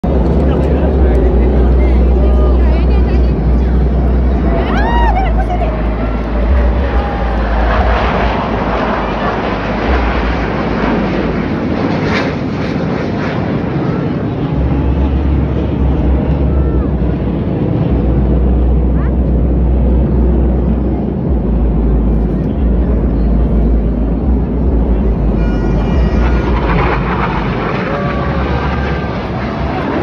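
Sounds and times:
fighter jets flying over: 0:00.0 - 0:30.0.

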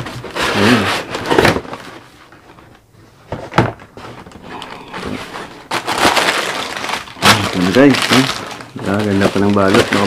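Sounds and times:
box and paper wrapping rustling: 0:00.0 - 0:10.0
sharp paper crackle: 0:04.2 - 0:10.0.

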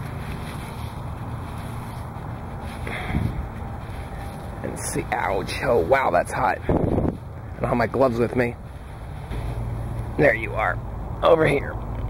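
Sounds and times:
wind noise on microphone: 0:00.0 - 0:10.1
hand digging through mulch: 0:00.0 - 0:10.3.

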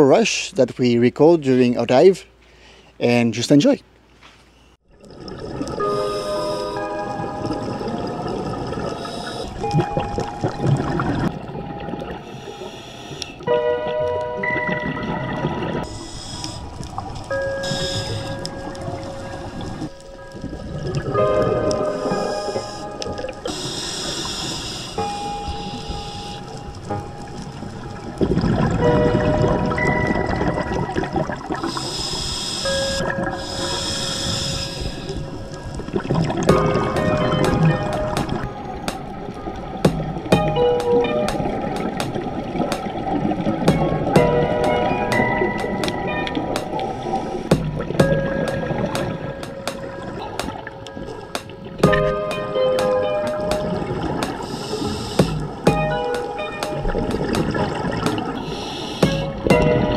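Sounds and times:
bursts of bubbles: 0:04.9 - 0:12.2, 0:28.2 - 0:31.7, 0:35.8 - 0:54.5, 0:55.2 - 0:59.9
slow background music: 0:05.4 - 0:59.9
diver regulator exhalations: 0:58.3 - 0:59.5.

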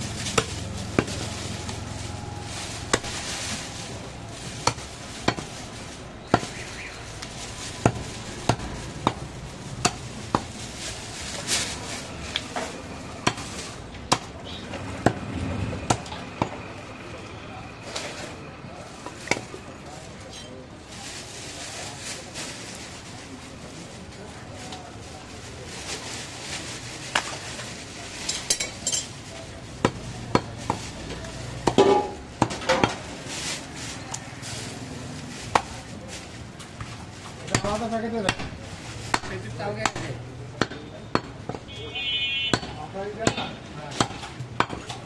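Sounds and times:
background noise: 0:00.0 - 0:45.0
cleaver chopping meat and bone: 0:00.3 - 0:01.3, 0:02.8 - 0:03.2, 0:04.6 - 0:05.5, 0:06.3 - 0:06.6, 0:07.8 - 0:10.5, 0:13.2 - 0:16.7, 0:29.8 - 0:30.8, 0:31.6 - 0:33.0, 0:37.5 - 0:41.6, 0:42.5 - 0:45.0.

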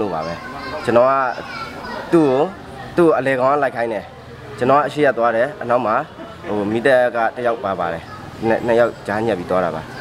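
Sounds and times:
man talking: 0:02.1 - 0:09.9.

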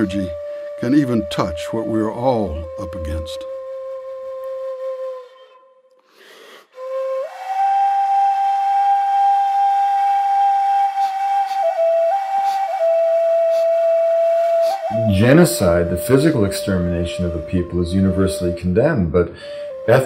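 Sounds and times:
solo flute long held notes: 0:00.0 - 0:20.0
breathy sound: 0:05.2 - 0:06.9, 0:19.3 - 0:19.8.

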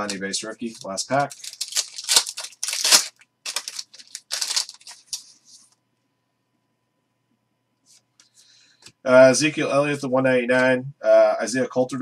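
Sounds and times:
foil wrapper crinkling and tearing: 0:00.0 - 0:05.3.

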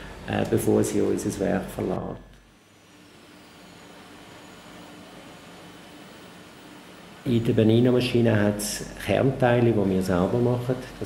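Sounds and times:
machinery and ventilation hum: 0:00.0 - 0:11.0.

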